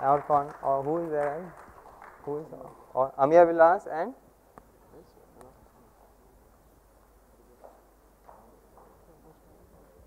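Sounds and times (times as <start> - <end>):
faint background voices: 4.8 - 10.0.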